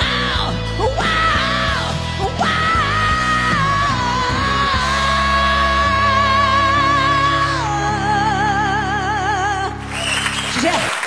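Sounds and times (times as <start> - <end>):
man singing rock song: 0.0 - 7.9
loud rock backing music: 0.0 - 8.7.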